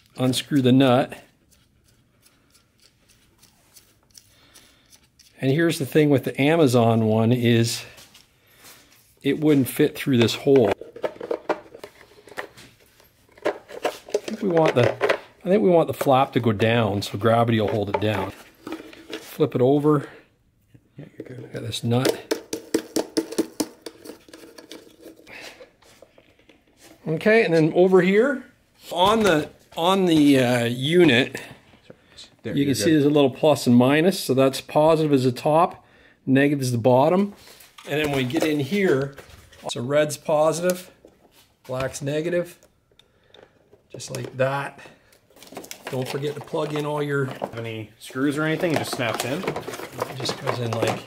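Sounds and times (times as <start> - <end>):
hard plastic clicking and rattling: 48.5 - 51.0.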